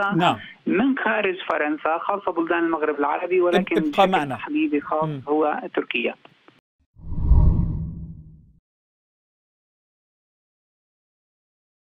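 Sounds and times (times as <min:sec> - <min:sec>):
deep whoosh: 0:07.0 - 0:08.4.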